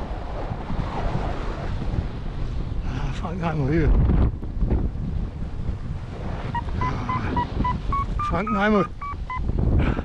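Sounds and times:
wind rushing over microphone: 0.0s - 10.0s
variometer high beeps: 6.5s - 9.5s.

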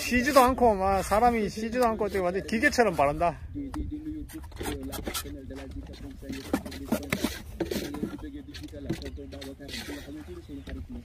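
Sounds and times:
trowel scraping and tapping mortar: 0.0s - 3.1s, 3.7s - 10.9s
people talking: 0.0s - 11.0s.

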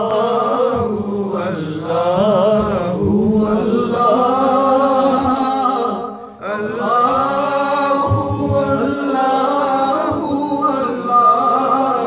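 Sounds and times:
man chanting a hymn: 0.0s - 12.0s.

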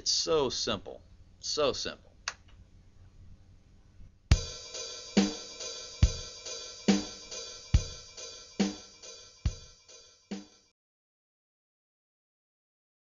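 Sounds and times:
bass drum: 4.3s - 10.5s
open hi-hats: 4.3s - 10.7s
snare drum: 4.3s - 10.7s.

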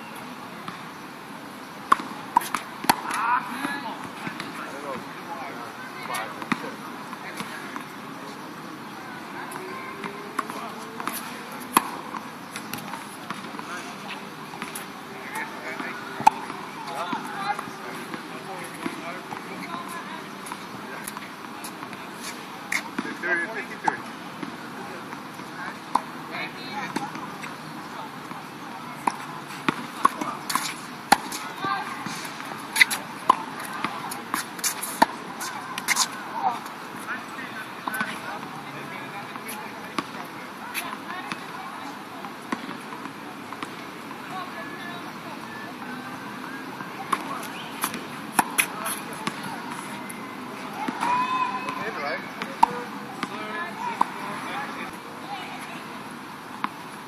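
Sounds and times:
tennis ball bouncing: 1.8s - 5.1s, 6.0s - 7.9s, 9.4s - 43.8s, 46.0s - 55.7s
tennis ball hit by rackets: 1.9s - 5.0s, 6.1s - 6.7s, 9.6s - 13.7s, 15.4s - 21.2s, 29.0s - 36.6s, 37.8s - 38.5s, 46.4s - 50.1s, 50.8s - 51.8s, 52.4s - 53.4s.

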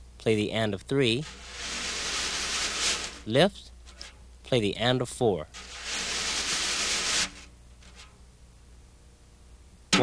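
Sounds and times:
wire brush swish on snare drum: 1.2s - 4.2s, 5.6s - 8.2s.

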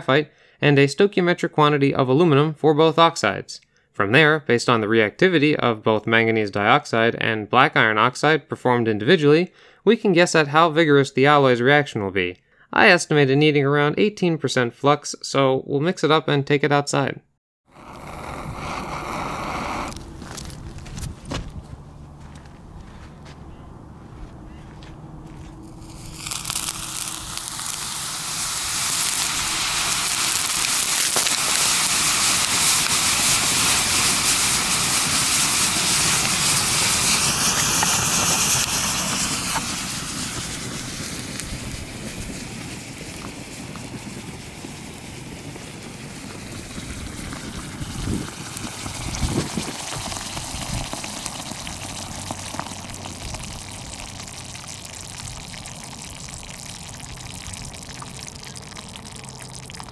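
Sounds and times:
thermite reaction rushing hiss: 17.7s - 21.2s, 25.6s - 56.6s
sharp pops: 17.7s - 21.8s, 25.5s - 45.1s.

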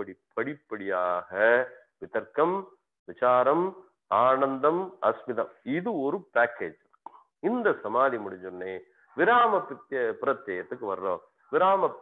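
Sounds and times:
man speaking: 0.0s - 6.8s, 7.4s - 12.0s.

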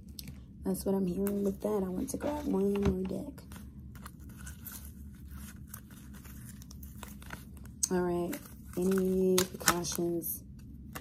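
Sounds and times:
cards shuffling: 1.2s - 10.2s.

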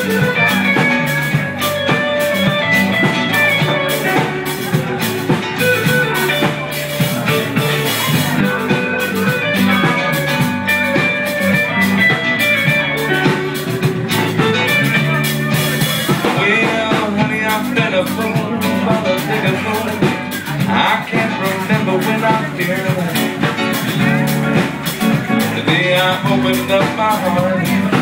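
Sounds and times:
drum kit steady beat: 0.0s - 28.0s
electric guitar: 0.0s - 28.0s
live blues rock band: 0.0s - 28.0s.

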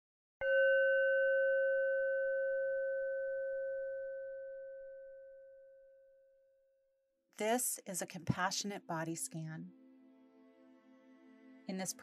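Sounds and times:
meditation bell ringing: 0.4s - 6.2s.

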